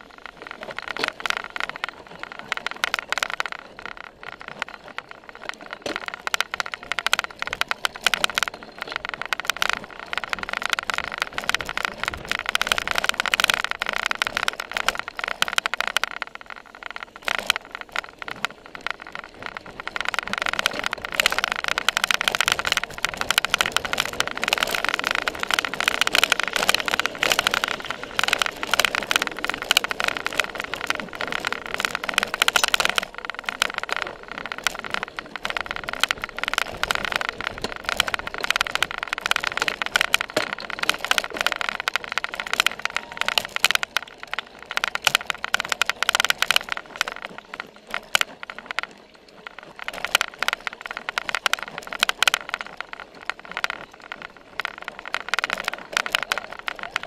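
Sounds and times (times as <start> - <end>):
bike rattling over bumpy ground: 0.0 - 57.0
faint steady whine: 0.0 - 57.0.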